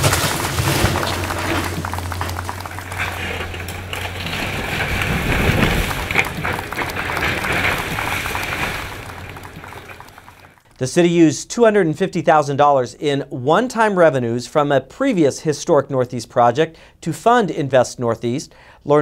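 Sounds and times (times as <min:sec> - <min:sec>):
excavator engine running: 0:00.0 - 0:10.6
walls cracking and crunching: 0:00.0 - 0:10.6.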